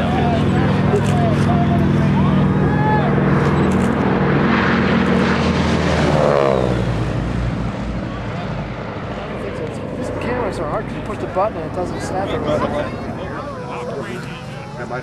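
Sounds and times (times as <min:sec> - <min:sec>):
propeller plane engine passing low: 0:00.0 - 0:15.0.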